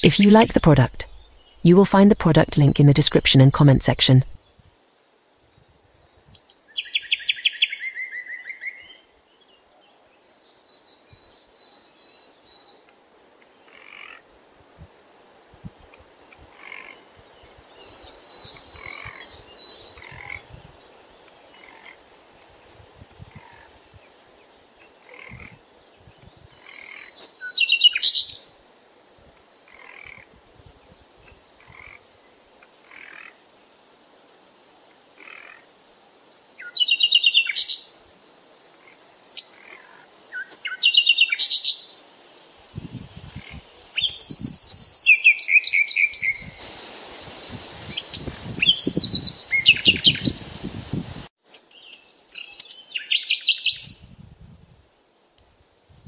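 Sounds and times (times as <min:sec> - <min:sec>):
birds chirping trilled phrases: 0:00.0 - 0:04.4
hiss: 0:46.6 - 0:48.1.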